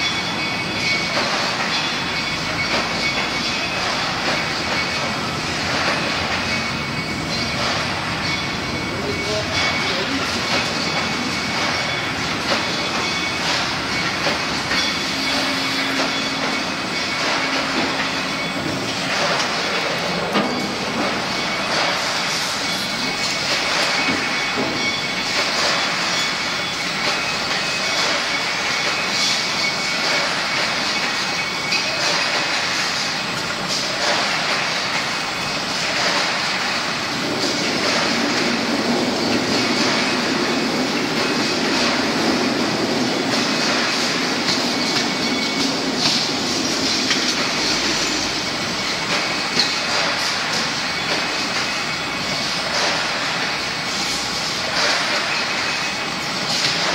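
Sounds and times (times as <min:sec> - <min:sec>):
machine metallic clatter with hiss: 0:00.0 - 0:56.9.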